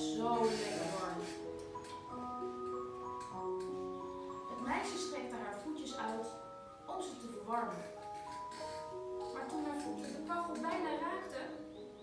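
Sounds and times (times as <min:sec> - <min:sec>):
keyboard playing held notes: 0:00.0 - 0:12.0.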